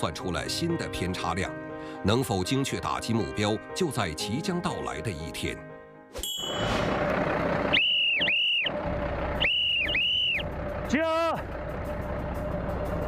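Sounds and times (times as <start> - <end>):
truck engine running: 6.4 - 13.0
whistle short blasts: 7.7 - 8.8, 9.4 - 10.4.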